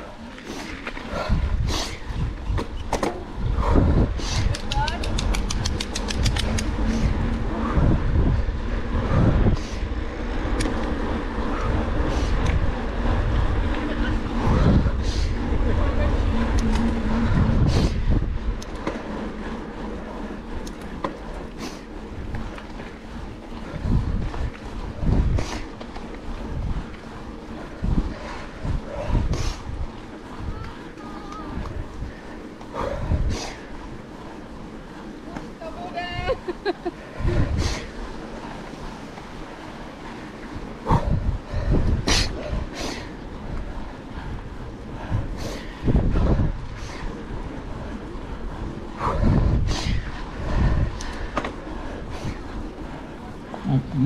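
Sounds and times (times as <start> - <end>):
tyre noise on road: 0.0 - 54.0
wind rumble on microphone: 0.0 - 54.0
bike knocks and clicks: 2.5 - 3.3, 4.5 - 6.9
bike hub ratcheting: 4.2 - 35.5.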